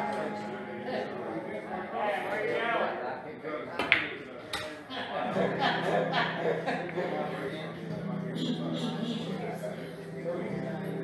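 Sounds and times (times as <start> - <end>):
room chatter: 0.0 - 11.0.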